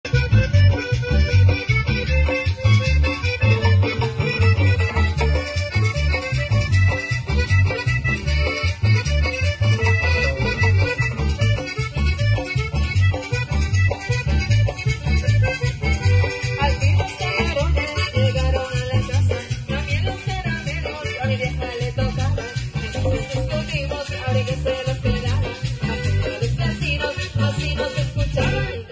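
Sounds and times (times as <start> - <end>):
accordion: 0.0 - 28.9
tropical band playing: 0.0 - 28.9.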